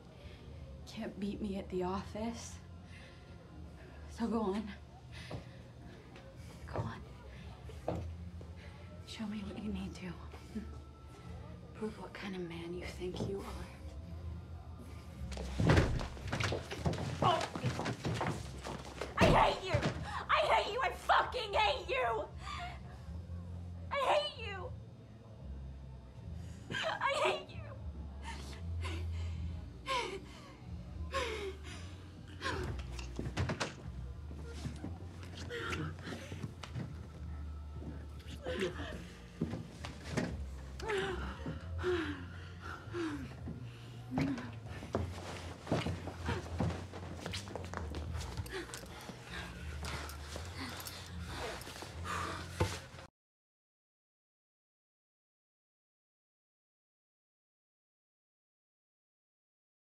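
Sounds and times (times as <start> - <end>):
heavy breathing: 34.3 - 53.1
breathy gasps and moans: 34.4 - 37.0, 37.8 - 46.9, 47.9 - 53.1.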